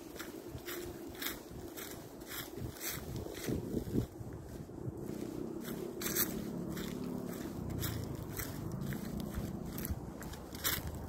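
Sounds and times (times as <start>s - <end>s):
footsteps crunching through dry leaves: 0.0s - 11.0s
low rumble: 0.2s - 11.0s.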